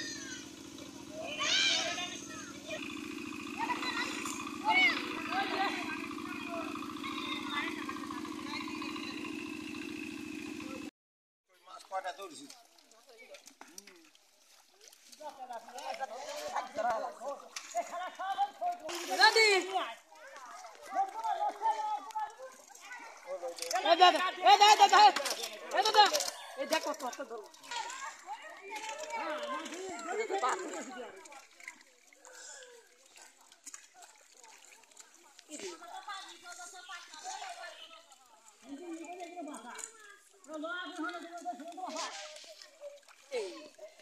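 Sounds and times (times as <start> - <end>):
people talking and calling out: 0.0 - 10.9, 11.5 - 44.0
small engine running: 0.0 - 10.9, 20.8 - 43.8
voices: 0.0 - 10.9, 11.6 - 44.0.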